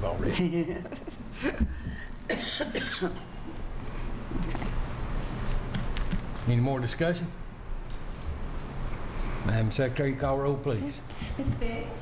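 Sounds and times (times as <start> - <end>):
person coughing: 2.3 - 3.3.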